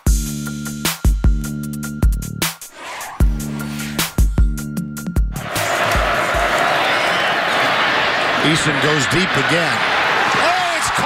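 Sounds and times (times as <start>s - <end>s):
stadium crowd noise: 5.3s - 11.0s.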